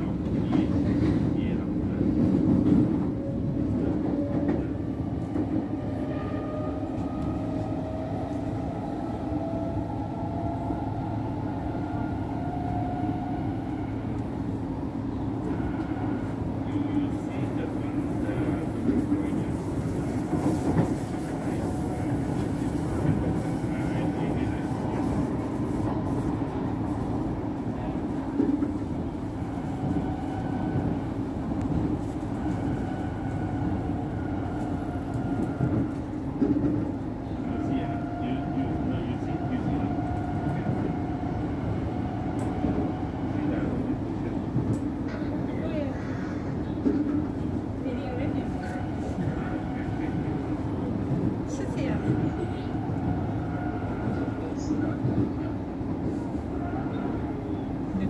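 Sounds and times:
train wheels rumbling: 0:00.0 - 0:58.0.

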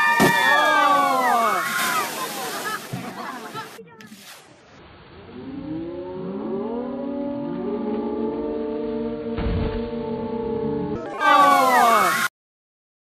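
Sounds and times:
people shrieking: 0:00.0 - 0:02.6, 0:11.0 - 0:12.3
whale splashing into water: 0:00.0 - 0:03.4
voices: 0:00.2 - 0:04.3, 0:11.0 - 0:12.3.

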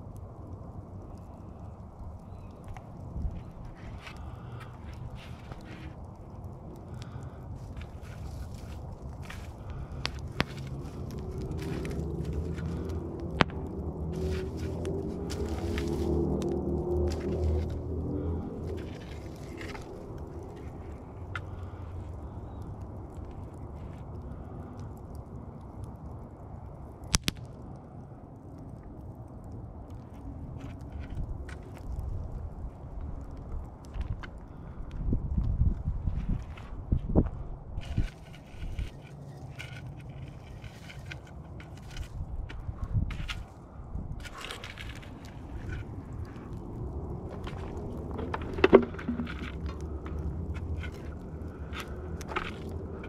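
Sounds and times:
campfire embers crackling: 0:00.0 - 0:53.0
steady low rumble: 0:00.0 - 0:53.0
sharp pops: 0:27.1 - 0:27.5.

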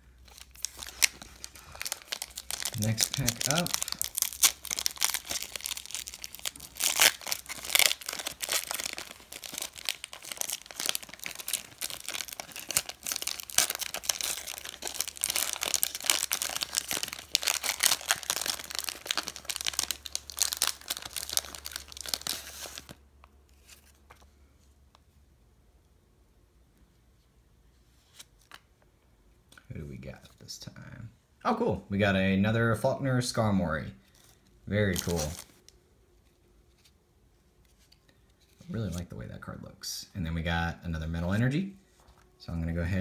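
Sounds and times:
foil wrapper crinkling and tearing: 0:00.2 - 0:23.0, 0:34.1 - 0:35.7.

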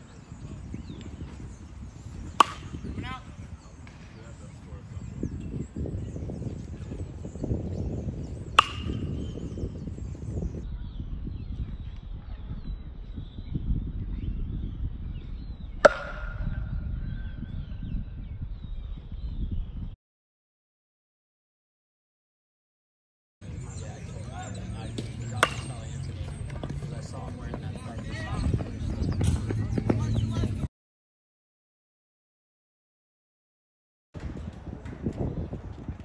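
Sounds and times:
metal bat striking ball: 0:02.2 - 0:03.0, 0:08.4 - 0:09.5, 0:15.8 - 0:16.8, 0:24.9 - 0:26.7.

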